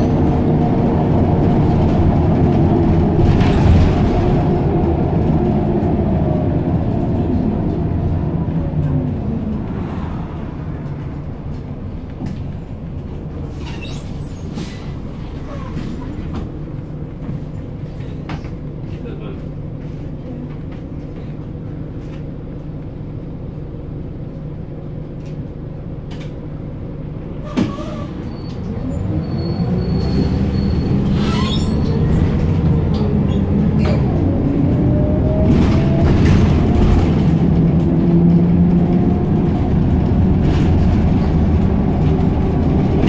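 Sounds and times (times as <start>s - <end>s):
bus engine drone: 0.0s - 43.0s.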